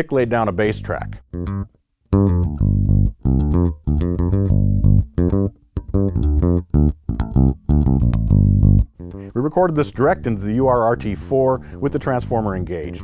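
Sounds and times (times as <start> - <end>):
electric bass plucked notes: 0.5 - 13.0.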